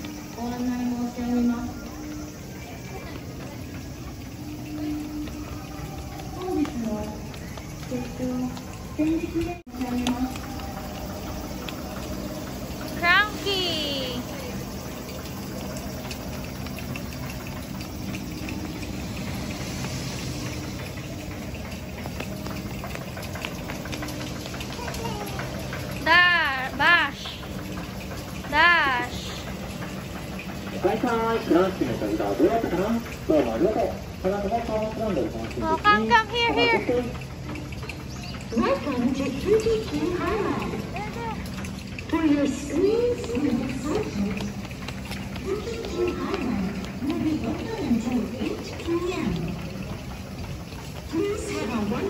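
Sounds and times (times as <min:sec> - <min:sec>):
outdoor ambience hiss: 0:00.0 - 0:52.0
steady low hum: 0:00.0 - 0:52.0
child's sing-song call: 0:24.6 - 0:26.9.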